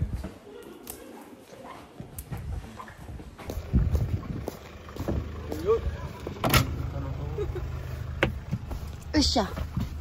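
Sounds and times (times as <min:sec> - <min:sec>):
van engine idling: 0:03.4 - 0:10.0
loud vehicle clunk: 0:06.2 - 0:07.1, 0:08.0 - 0:08.8.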